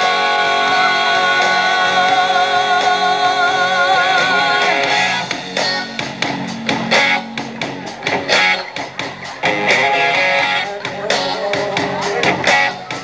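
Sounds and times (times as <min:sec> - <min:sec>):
bass and drums: 0:00.0 - 0:13.0
electric guitar strumming: 0:00.0 - 0:13.0.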